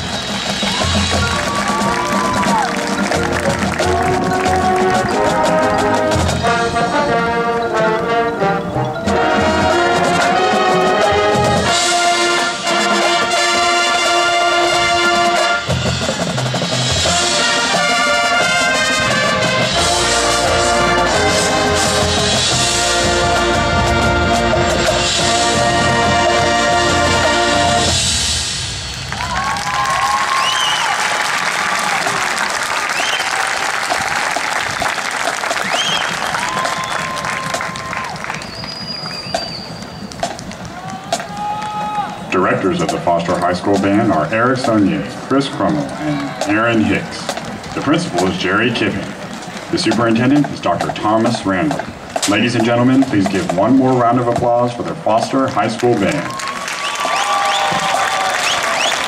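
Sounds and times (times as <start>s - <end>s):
crowd applauding and cheering: 0.0s - 6.7s, 28.7s - 44.0s, 45.2s - 50.0s, 53.9s - 59.0s
marching band playing: 0.0s - 59.0s
whoops: 0.6s - 2.9s, 29.1s - 34.3s, 35.6s - 38.9s, 40.7s - 42.2s, 56.2s - 59.0s.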